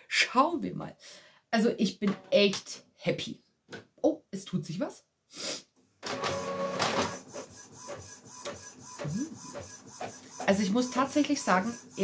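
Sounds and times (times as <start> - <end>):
printer mechanism whining: 6.0 - 12.0.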